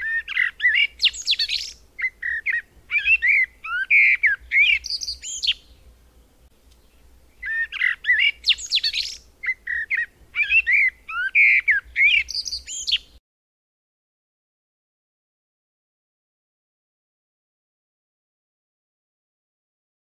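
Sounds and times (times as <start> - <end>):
songbird chirping and whistling: 0.0 - 5.9, 6.8 - 13.2.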